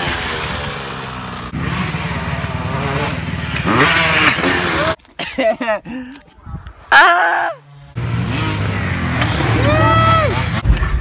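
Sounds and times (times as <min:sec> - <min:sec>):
person shouting or laughing: 0:06.8 - 0:07.7, 0:09.5 - 0:10.4
car engine and road rumble: 0:07.6 - 0:11.0.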